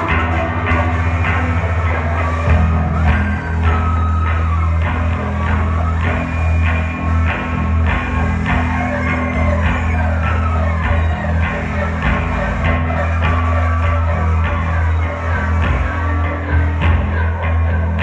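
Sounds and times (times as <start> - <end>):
electric guitars: 0.0 - 18.0
heavy low drone: 0.0 - 18.0
noise rock band playing: 0.0 - 18.0.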